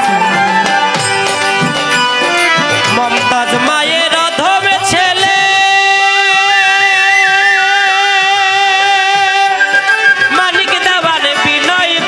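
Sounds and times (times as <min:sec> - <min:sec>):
person singing folk song: 0:02.9 - 0:12.0.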